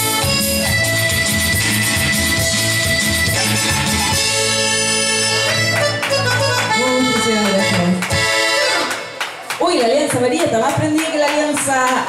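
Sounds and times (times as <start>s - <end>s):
accordion melody: 0.0s - 9.4s.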